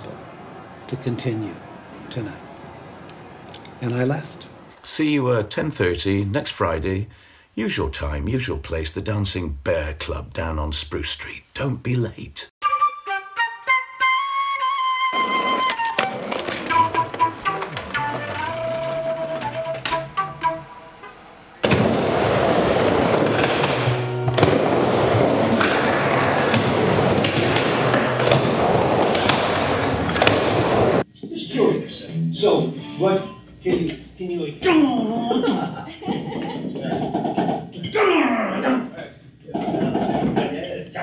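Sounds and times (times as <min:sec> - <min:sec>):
skateboard wheels rolling on concrete: 0:00.0 - 0:04.8, 0:15.1 - 0:20.6, 0:21.6 - 0:31.1
flute phrase: 0:12.6 - 0:21.2
instrumental music: 0:12.6 - 0:21.3, 0:22.9 - 0:31.0, 0:32.1 - 0:33.7
skateboard knock: 0:15.4 - 0:20.2, 0:21.6 - 0:31.0.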